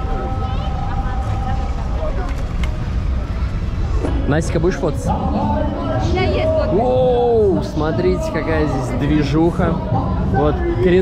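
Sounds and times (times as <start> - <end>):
crowd voices: 0.0 - 11.0
passing traffic: 0.0 - 11.0.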